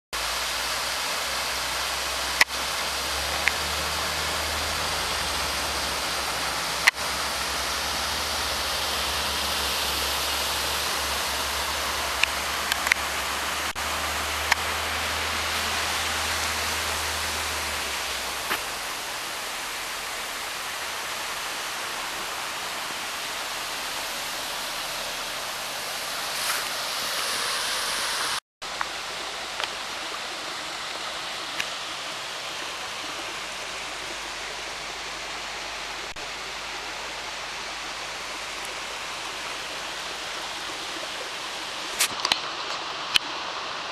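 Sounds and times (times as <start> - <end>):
waterfall rushing into pool: 0.2 - 43.9.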